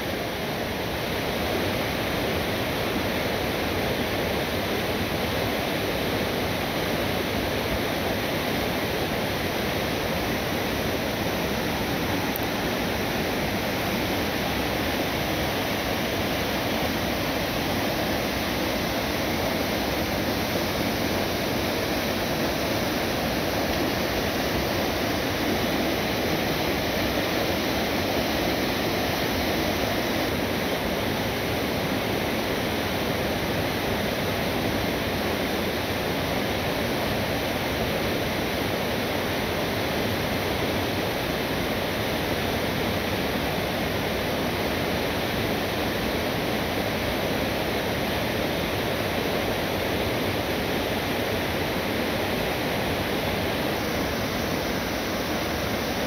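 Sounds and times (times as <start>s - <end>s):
water rushing over rocks: 0.1s - 56.0s.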